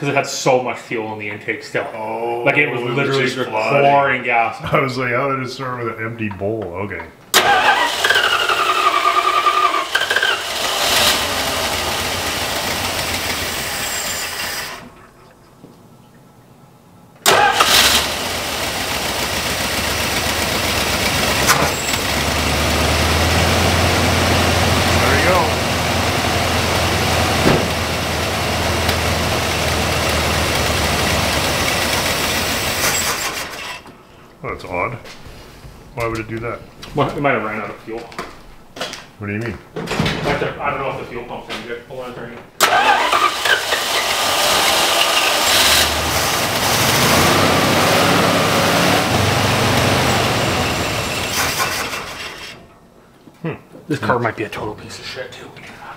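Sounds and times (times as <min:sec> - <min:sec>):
truck engine running and stalling: 0:07.3 - 0:14.9, 0:17.2 - 0:33.8, 0:42.6 - 0:52.7
engine restarting: 0:07.3 - 0:15.0, 0:17.2 - 0:33.8, 0:42.6 - 0:52.7.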